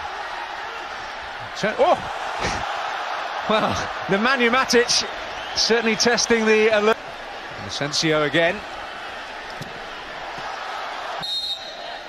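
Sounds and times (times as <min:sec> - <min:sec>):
stadium crowd noise: 0:00.0 - 0:12.0
male commentator exclaiming: 0:03.4 - 0:07.0.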